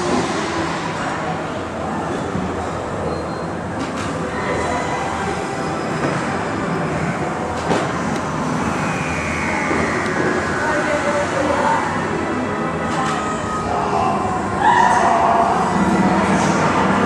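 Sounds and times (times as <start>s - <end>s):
murmur of voices: 0.0s - 17.0s
rumbling background din: 0.0s - 17.0s.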